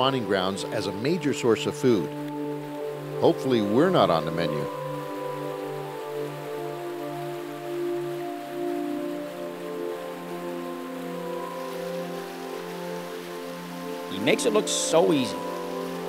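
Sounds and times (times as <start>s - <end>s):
river water rushing: 0.0s - 16.0s
soft background music chords: 0.0s - 16.0s.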